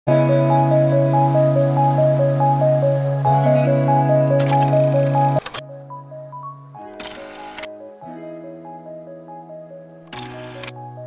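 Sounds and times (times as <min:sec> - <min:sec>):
light background music: 0:00.1 - 0:11.0.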